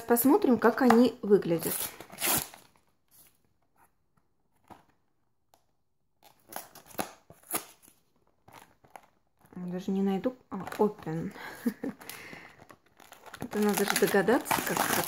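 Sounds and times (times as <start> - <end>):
cardboard box rustling and crackling: 12.7 - 15.0.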